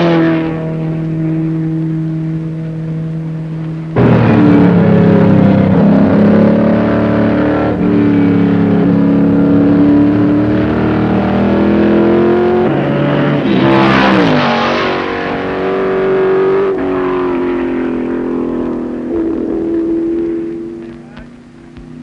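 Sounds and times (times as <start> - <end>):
racing engine at speed: 0.0 - 22.0.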